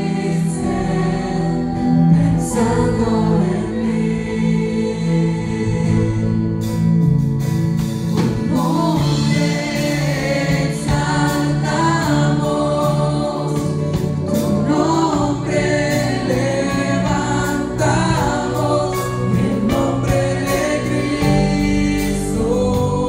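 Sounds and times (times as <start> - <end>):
women singing: 0.0 - 6.6, 8.2 - 23.0
church band worship music: 0.0 - 23.0.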